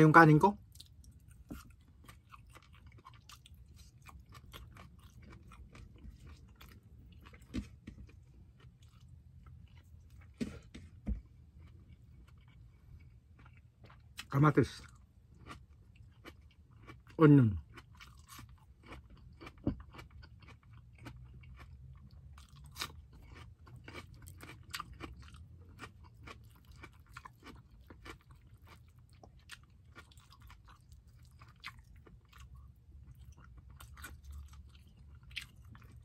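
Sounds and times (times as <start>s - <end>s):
person chewing food: 0.6s - 36.0s.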